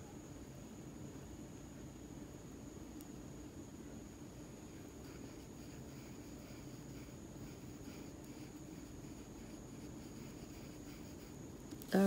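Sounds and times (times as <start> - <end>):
steady low hum: 0.0 - 12.0
paintbrush scratching and dabbing: 4.7 - 11.4.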